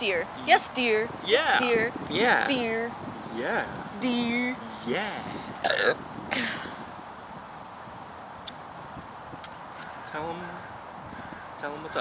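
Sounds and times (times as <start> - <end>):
outdoor background hiss: 0.0 - 12.0
breathy laugh: 6.3 - 6.8.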